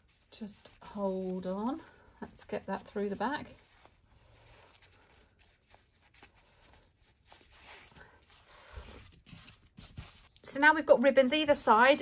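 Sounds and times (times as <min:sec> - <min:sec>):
fabric rustling: 0:00.0 - 0:10.5.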